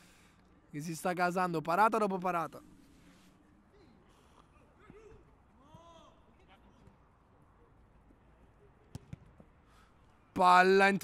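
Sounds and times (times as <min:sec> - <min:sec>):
distant shouts of players: 0:04.5 - 0:07.0.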